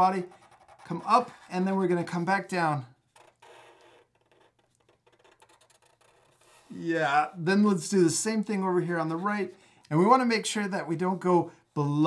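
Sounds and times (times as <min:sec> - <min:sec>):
marker scratching on paper: 0:00.0 - 0:02.1, 0:03.1 - 0:06.8.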